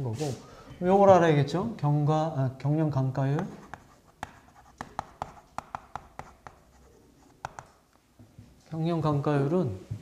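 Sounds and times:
chalk tapping and scratching on chalkboard: 3.3 - 8.0.

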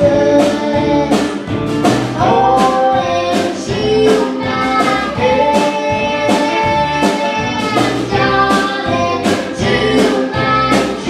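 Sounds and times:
girl singing: 0.0 - 1.5, 2.2 - 11.0
strummed acoustic guitar: 0.0 - 11.0.

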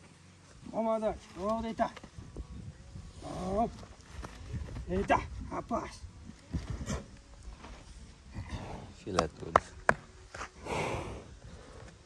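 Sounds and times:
animal body thumping on dirt: 6.3 - 7.8.

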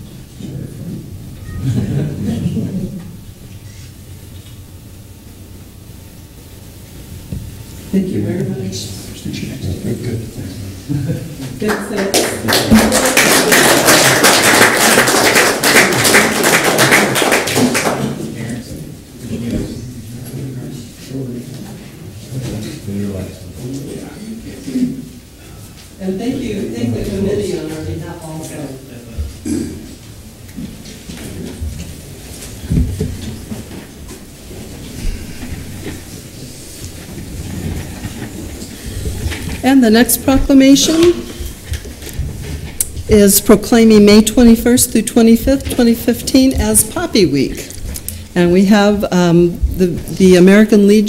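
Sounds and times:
people shuffling and rustling: 0.0 - 4.4, 7.3 - 43.9, 45.3 - 50.9
audience applauding: 11.6 - 18.3
voices: 39.6 - 41.4, 43.1 - 47.8, 48.4 - 51.0.

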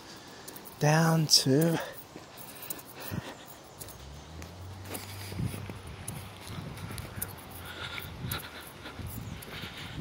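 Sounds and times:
footsteps on concrete: 0.0 - 10.0.

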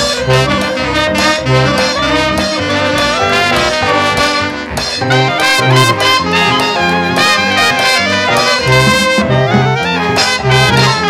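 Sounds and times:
hot dance band playing: 0.0 - 11.0.

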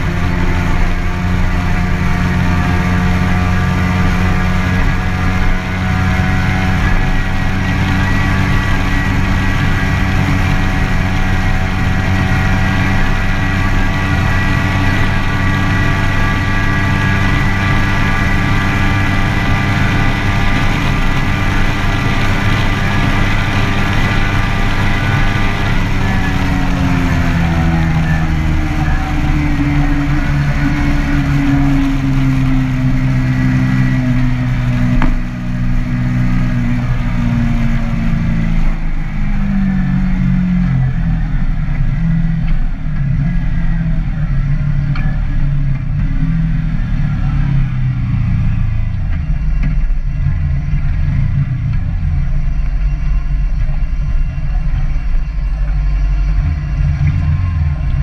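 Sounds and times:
motorcycle engine: 0.0 - 58.0.

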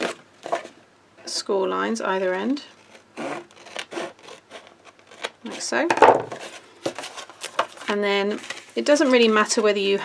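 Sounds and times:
cardstock rustling and tapping: 5.8 - 9.7.

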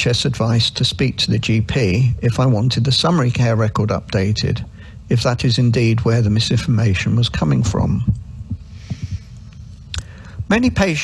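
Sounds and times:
microphone line hum: 6.0 - 11.0.

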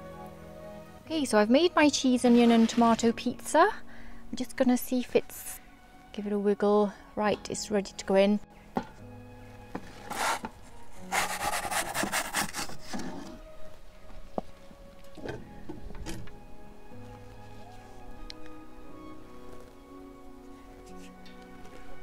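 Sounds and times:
soft background music: 0.0 - 22.0
pizza peel scraping stone: 9.9 - 13.4.

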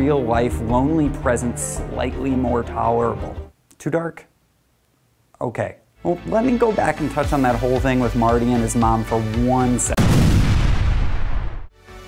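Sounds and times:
explosion with deep rumble: 10.0 - 11.7.

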